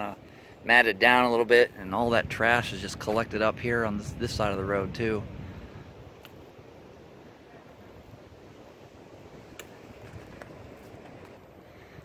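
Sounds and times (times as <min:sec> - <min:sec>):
light wind on microphone: 0:00.0 - 0:12.0.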